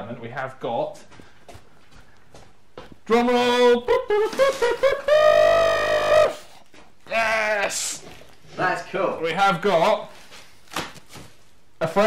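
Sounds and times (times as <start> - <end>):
man speaking: 3.0 - 4.2, 11.8 - 12.0
man singing high falsetto note: 5.2 - 6.4.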